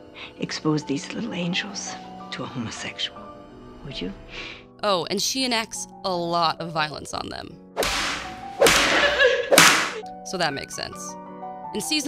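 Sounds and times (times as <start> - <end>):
cane lashes with echo: 7.8 - 10.0.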